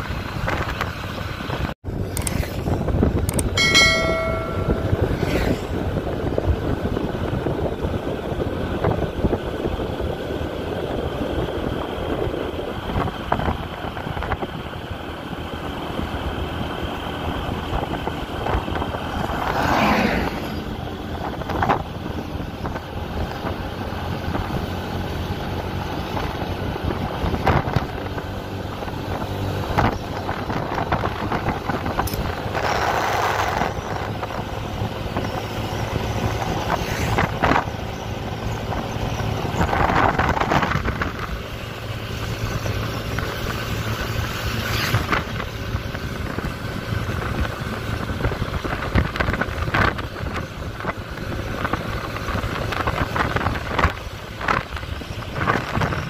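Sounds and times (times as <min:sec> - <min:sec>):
motorcycle engine running: 0:00.0 - 0:19.5
wind rushing over microphone: 0:00.0 - 0:56.0.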